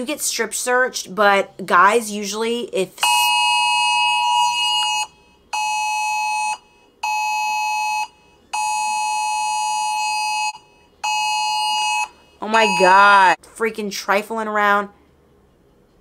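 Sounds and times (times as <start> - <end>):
high electronic beep tone: 12.6 - 13.2.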